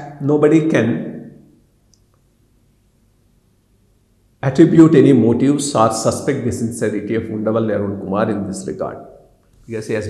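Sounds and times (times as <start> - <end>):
man speaking: 0.0 - 1.4, 4.4 - 10.0.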